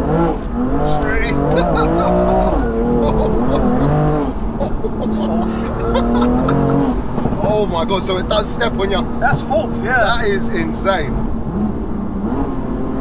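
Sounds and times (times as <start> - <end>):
car engine at full throttle: 0.0 - 13.0
people laughing and exclaiming: 0.9 - 7.5.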